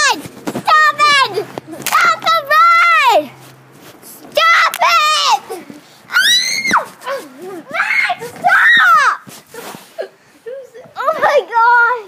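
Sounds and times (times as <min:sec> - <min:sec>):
children screaming: 0:04.3 - 0:09.3.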